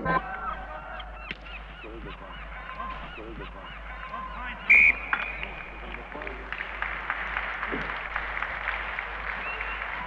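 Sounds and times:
geese honking: 0.0 - 6.4.

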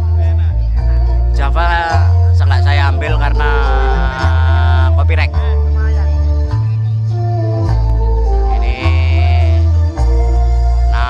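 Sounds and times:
heavy sustained bass notes: 0.0 - 11.0
keyboard-like melody: 0.0 - 11.0.

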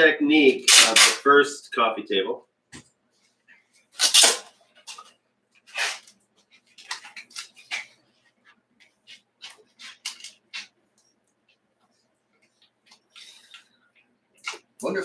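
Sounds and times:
adhesive tape ripping: 0.6 - 1.2, 4.0 - 5.0, 5.7 - 6.2
tape pressed and scuffing: 4.0 - 10.8.

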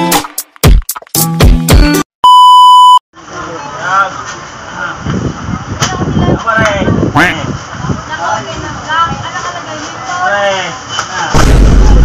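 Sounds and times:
electronic beep: 2.2 - 3.0
busy shop background noise: 3.2 - 12.0.

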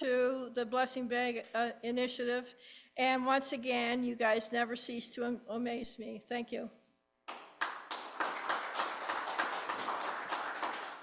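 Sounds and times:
congregation applauding: 7.3 - 11.0.

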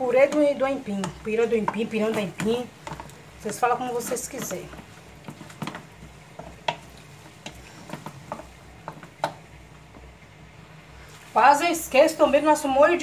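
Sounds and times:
utensil stirring filling in pot: 0.0 - 12.7.

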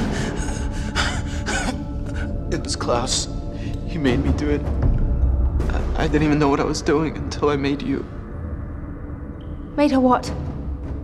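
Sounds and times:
quiet dramatic music: 0.0 - 11.0.

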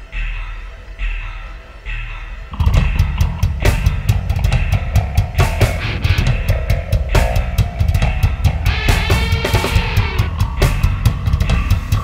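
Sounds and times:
guitar chord ringing: 2.5 - 11.0
metal band playing: 2.5 - 12.0.

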